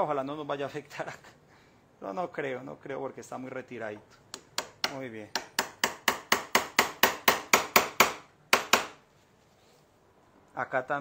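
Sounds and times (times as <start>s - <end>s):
hammer striking chisel handle: 4.3s - 9.0s.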